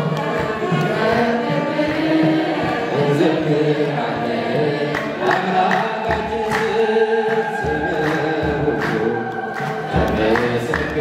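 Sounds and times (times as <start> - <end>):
man singing into a microphone: 3.0 - 11.0.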